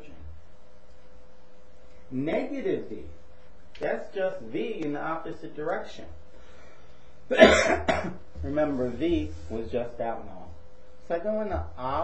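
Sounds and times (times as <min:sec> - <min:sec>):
man coughing: 0:07.3 - 0:08.2.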